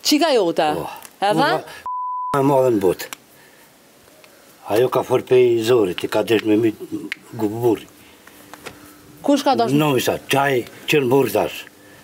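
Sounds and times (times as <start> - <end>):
person speaking: 0.7 - 3.0
censor bleep: 1.8 - 2.4.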